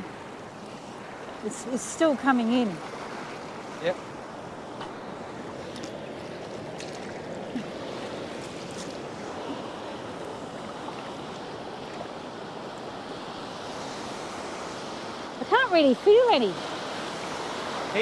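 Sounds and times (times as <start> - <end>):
surf washing over sand: 0.0 - 18.0.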